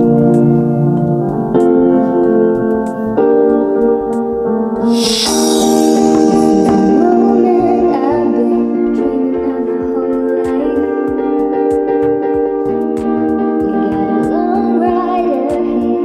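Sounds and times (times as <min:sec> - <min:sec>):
pop song through small speaker: 0:00.0 - 0:16.0.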